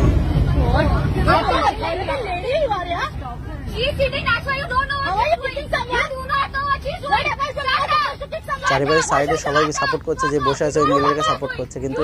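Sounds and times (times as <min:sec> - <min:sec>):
moving train rumble: 0:00.0 - 0:12.0.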